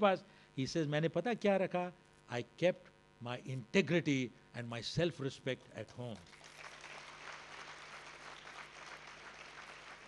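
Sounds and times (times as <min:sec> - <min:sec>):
low steady hum: 0:00.0 - 0:10.0
audience applauding: 0:06.2 - 0:10.0.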